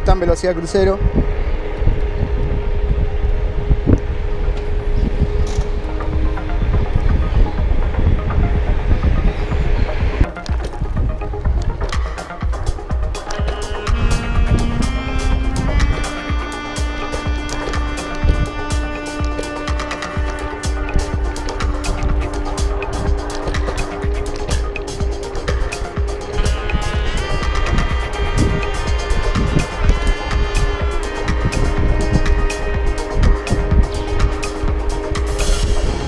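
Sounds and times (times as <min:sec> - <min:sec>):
background music with steady beat: 0:00.0 - 0:36.0
road rumble: 0:00.0 - 0:36.0
wind on microphone: 0:00.0 - 0:36.0.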